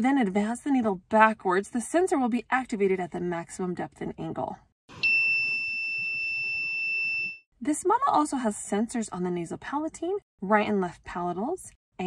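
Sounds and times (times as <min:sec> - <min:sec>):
high-pitched buzzer beep: 0:04.9 - 0:07.4.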